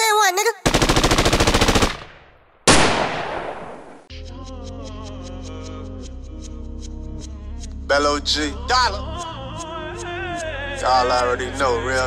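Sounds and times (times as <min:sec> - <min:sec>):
loud blast: 0:02.6 - 0:04.1.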